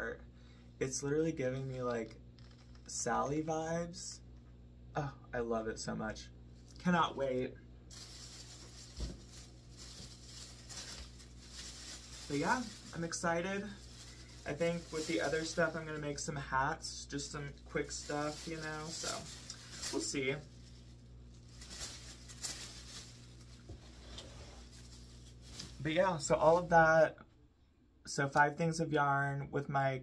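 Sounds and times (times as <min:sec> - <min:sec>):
plastic bag rustling: 0:07.9 - 0:16.4, 0:17.1 - 0:26.7.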